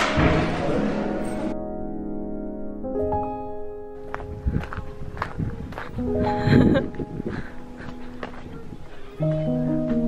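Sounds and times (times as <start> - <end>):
footsteps on gravel: 4.0 - 10.0.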